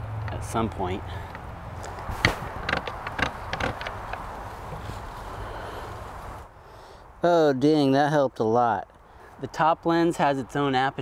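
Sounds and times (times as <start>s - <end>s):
camera clicks and knocks: 2.2s - 4.2s.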